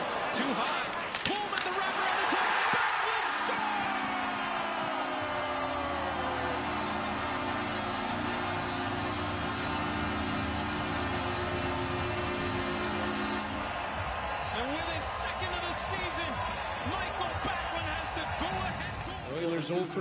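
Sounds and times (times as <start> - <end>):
voices shouting: 0.0 - 7.2
arena crowd cheering: 0.0 - 20.0
goal horn chord: 3.4 - 15.7.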